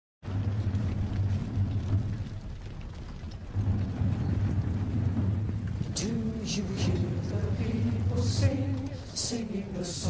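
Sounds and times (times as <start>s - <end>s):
low rumbling drone: 0.2s - 10.0s.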